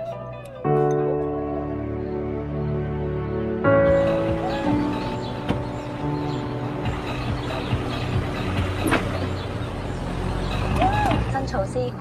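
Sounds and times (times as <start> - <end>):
car engine and traffic rumble: 1.2 - 12.0.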